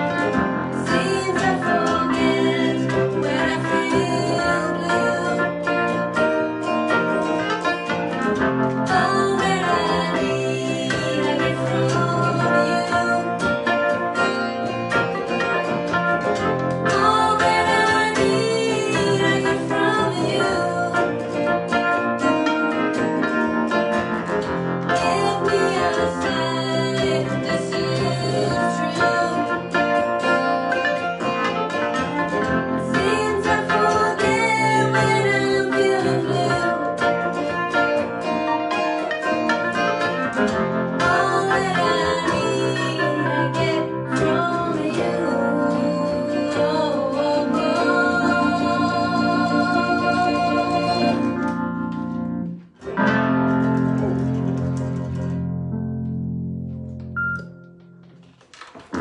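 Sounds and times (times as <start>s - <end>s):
keyboard sustained chords: 0.0s - 58.2s
acoustic guitar strumming: 0.0s - 59.0s.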